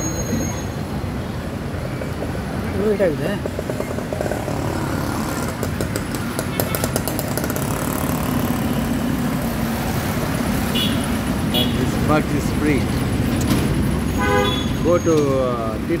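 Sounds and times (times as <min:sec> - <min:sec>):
street traffic: 0:00.0 - 0:16.0.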